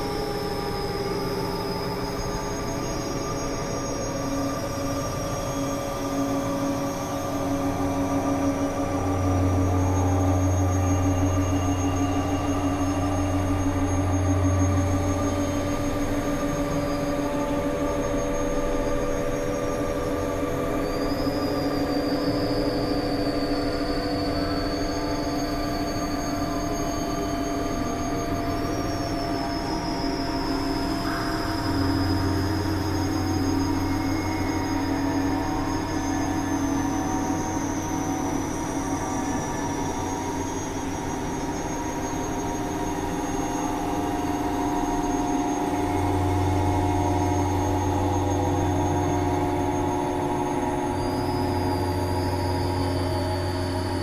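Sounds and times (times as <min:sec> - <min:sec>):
synthesizer drone: 0:00.0 - 0:54.0.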